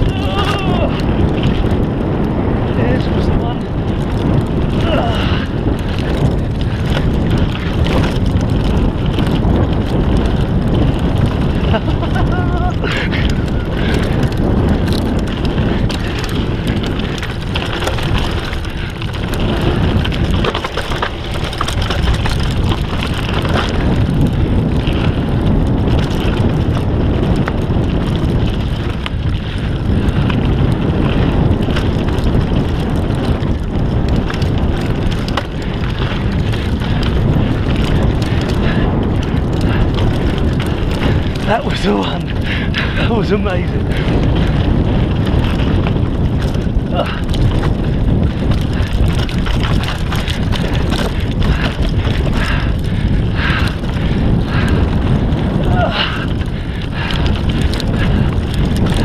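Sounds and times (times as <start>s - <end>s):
bike clattering over bumps: 0.0s - 59.0s
bike tyres rumbling on dirt: 0.0s - 59.0s
wind buffeting microphone: 0.0s - 59.0s.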